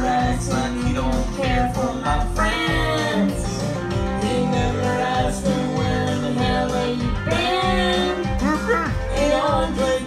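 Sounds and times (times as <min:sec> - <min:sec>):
backing music with guitar: 0:00.0 - 0:10.0
woman singing country song: 0:04.7 - 0:10.0.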